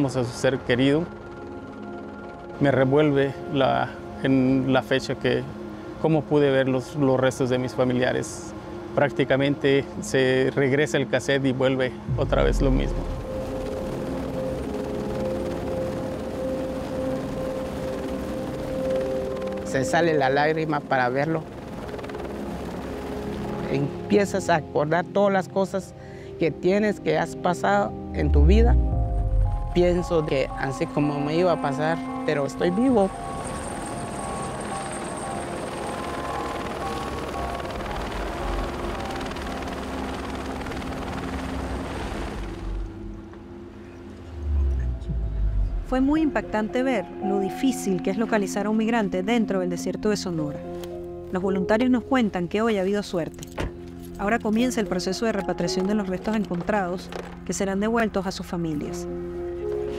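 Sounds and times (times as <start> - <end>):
faint high turbine whine: 0.0 - 24.1, 29.2 - 46.8
helicopter hovering: 0.0 - 25.0, 28.3 - 49.3.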